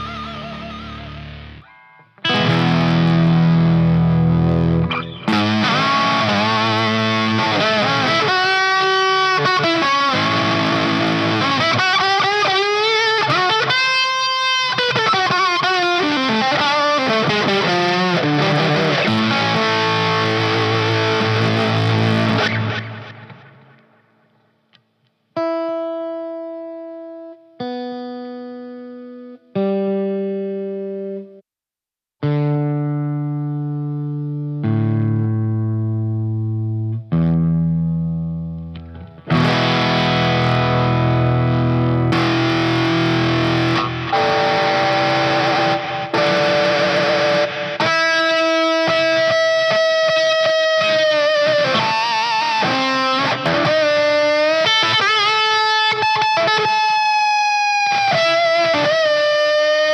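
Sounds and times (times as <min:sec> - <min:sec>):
open guitar strings plucked: 0:00.0 - 0:24.8, 0:34.6 - 0:59.9
distorted electric guitar: 0:00.0 - 0:31.4, 0:32.2 - 0:59.9.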